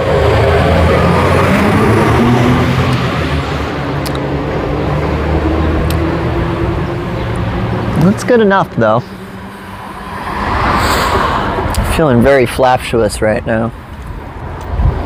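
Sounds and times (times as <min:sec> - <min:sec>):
passing motor vehicle engine: 0:00.0 - 0:12.3.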